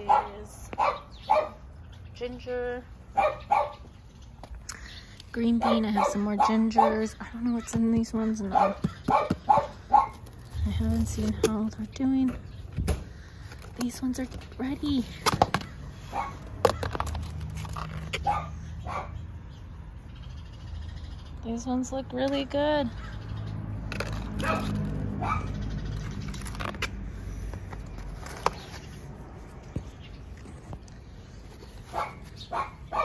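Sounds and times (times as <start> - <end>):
dog barking: 0.0 - 1.6, 3.2 - 3.8, 5.6 - 7.1, 8.5 - 10.2, 16.1 - 16.4, 18.2 - 19.2, 24.4 - 25.6, 31.9 - 33.0.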